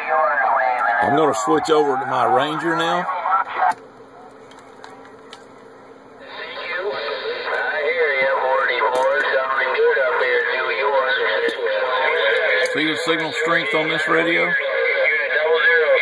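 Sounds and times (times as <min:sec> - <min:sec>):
person talking over radio speaker: 0:00.0 - 0:03.8, 0:06.2 - 0:16.0
faint radio static: 0:00.0 - 0:16.0.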